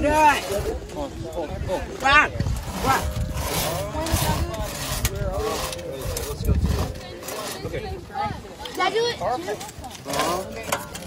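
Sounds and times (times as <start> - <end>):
crosscut saw rasping through log: 2.4 - 8.0.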